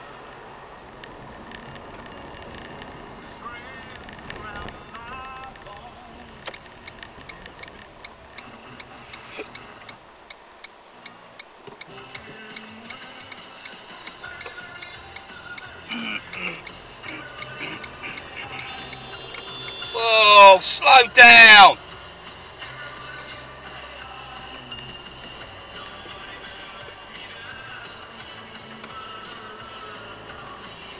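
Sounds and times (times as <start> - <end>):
music from car radio: 0.0 - 30.9
steady ticking: 1.5 - 30.9.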